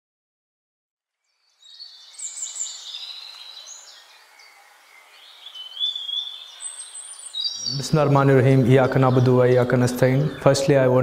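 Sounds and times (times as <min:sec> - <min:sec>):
birds chirping and whistling: 0:01.3 - 0:11.0.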